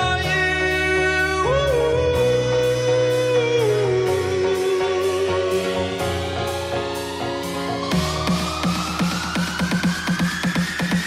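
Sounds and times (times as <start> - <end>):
man singing: 0.0 - 6.2
electronic dance-pop music: 0.0 - 11.0.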